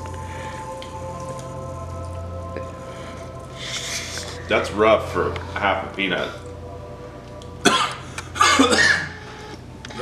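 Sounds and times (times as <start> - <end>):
man coughing: 7.6 - 9.3.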